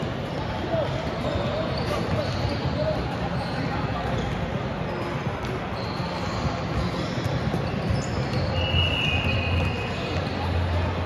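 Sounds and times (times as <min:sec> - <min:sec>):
basketballs bouncing: 0:00.0 - 0:11.0.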